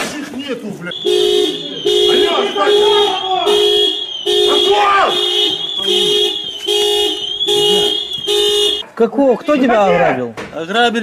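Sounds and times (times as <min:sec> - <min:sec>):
men shouting: 0:00.9 - 0:06.5
car horn blasts: 0:00.9 - 0:08.8.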